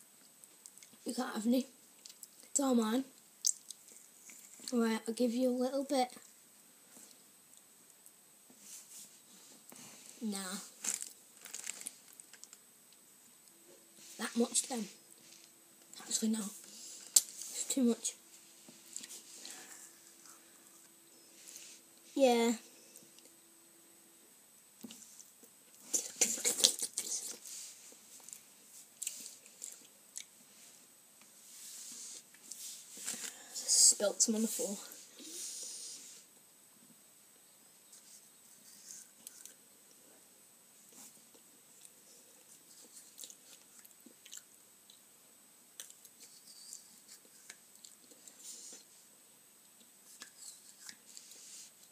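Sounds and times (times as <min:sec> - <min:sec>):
foil wrapper rustling: 0:10.8 - 0:12.5
person chewing: 0:25.7 - 0:27.4, 0:41.3 - 0:45.0.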